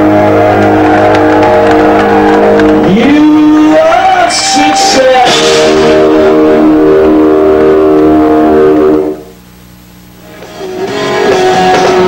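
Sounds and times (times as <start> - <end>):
electric guitar chord ringing: 3.6 - 9.5.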